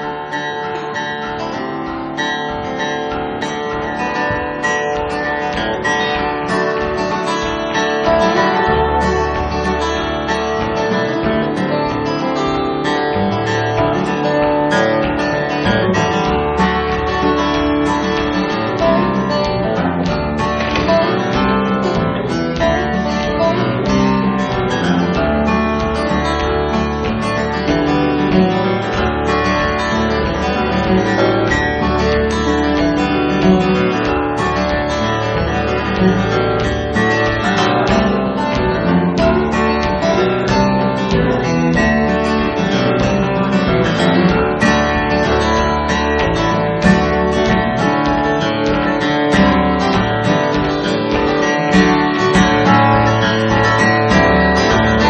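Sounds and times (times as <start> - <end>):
acoustic guitars picking and strumming: 0.0 - 55.0
low bass line: 5.7 - 55.0.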